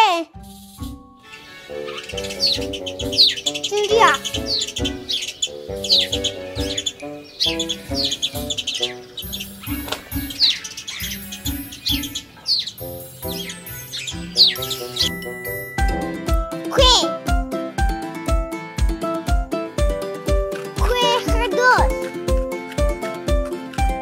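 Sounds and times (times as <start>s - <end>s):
children's music with steady beat: 0.0s - 24.0s
bird tweets: 0.4s - 15.8s.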